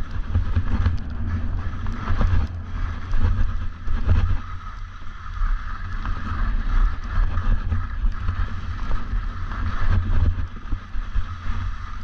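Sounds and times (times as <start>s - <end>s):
skis sliding over snow: 0.0s - 12.0s
wind buffeting microphone: 0.0s - 12.0s.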